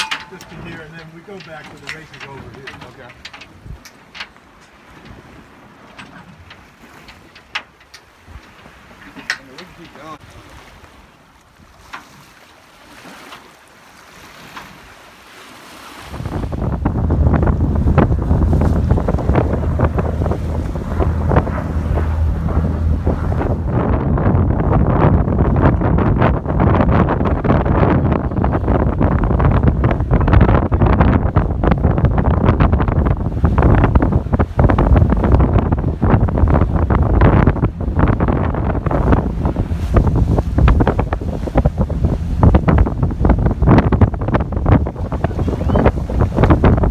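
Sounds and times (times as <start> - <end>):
water washing: 0.0 - 10.8, 11.5 - 27.8, 31.8 - 46.9
wind buffeting microphone: 0.0 - 12.3, 14.2 - 46.9.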